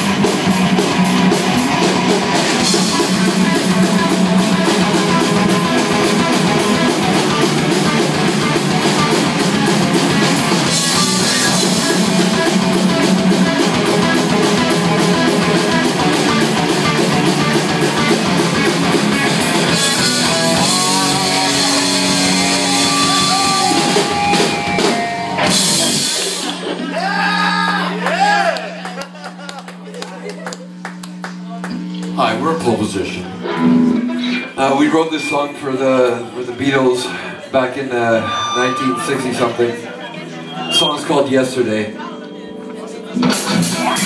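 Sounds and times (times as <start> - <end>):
drum kit fast beat: 0.0 - 26.7, 43.2 - 44.0
bass guitar: 0.0 - 27.4, 33.3 - 36.0, 42.7 - 44.0
electric guitar: 0.0 - 32.2, 33.0 - 36.4, 38.0 - 44.0
low amplifier tone: 37.8 - 43.1.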